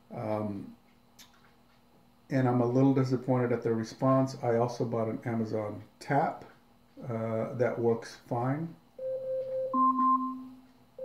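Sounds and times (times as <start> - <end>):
smart speaker timer alarm tones: 9.0 - 11.0.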